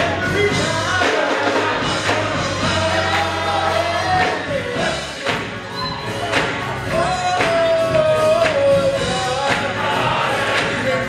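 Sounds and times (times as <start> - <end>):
men's choir singing: 0.0 - 11.0.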